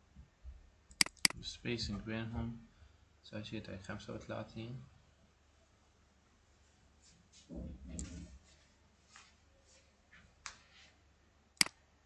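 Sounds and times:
keyboard and mouse clicks: 0.9s - 1.4s.

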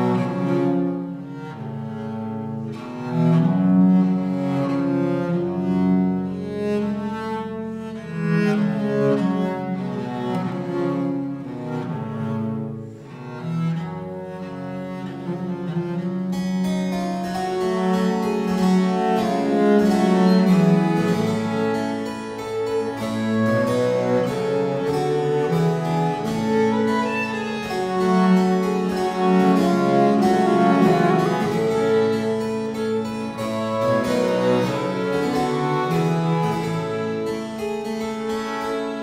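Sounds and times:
harpsichord plucked notes: 0.0s - 39.0s.

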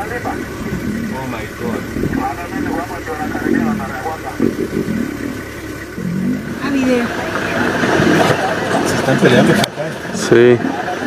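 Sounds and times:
lions growling and fighting: 0.0s - 11.0s
vehicle engine running: 0.0s - 11.0s.

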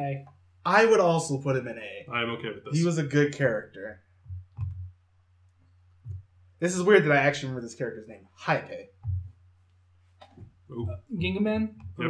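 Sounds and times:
computer mouse clicks: 4.3s - 4.9s.

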